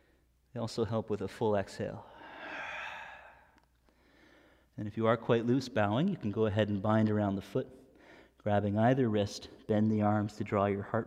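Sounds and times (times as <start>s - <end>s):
man exhaling: 2.0s - 4.6s.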